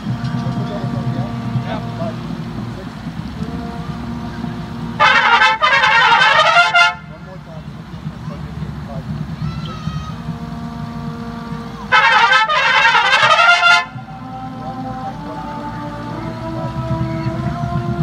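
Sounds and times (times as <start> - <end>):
trumpet line playing in unison: 0.0 - 7.5, 9.3 - 18.0
murmur of voices: 0.0 - 18.0
quiet held trumpet notes: 0.0 - 18.0.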